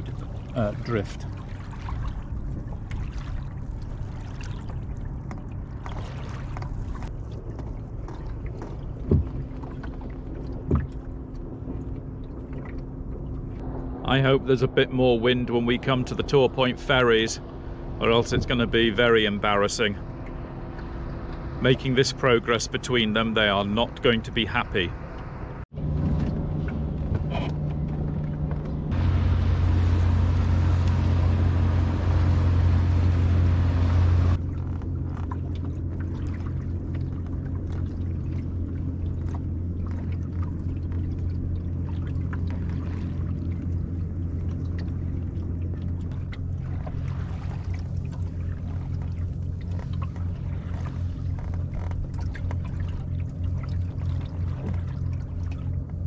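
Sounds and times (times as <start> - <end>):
steady low rumble: 0.0 - 56.0
water sloshing along hull: 0.0 - 56.0.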